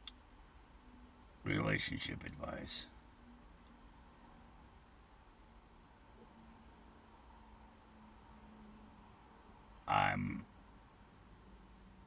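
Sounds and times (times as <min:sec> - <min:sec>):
faint background hum: 0:00.0 - 0:12.0
man speaking: 0:01.4 - 0:02.9, 0:09.9 - 0:10.4.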